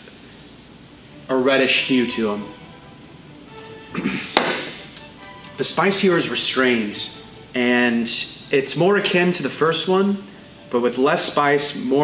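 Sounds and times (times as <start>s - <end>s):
glass knocking on table: 4.4s - 4.7s.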